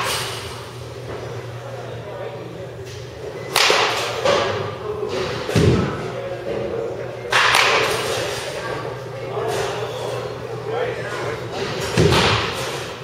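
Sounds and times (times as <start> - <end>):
baseball bat cracking ball: 3.5 - 4.5, 7.3 - 8.0.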